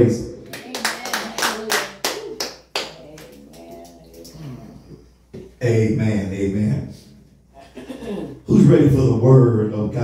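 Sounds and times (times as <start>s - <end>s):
voices: 0.0s - 10.0s
people clapping: 0.4s - 4.4s.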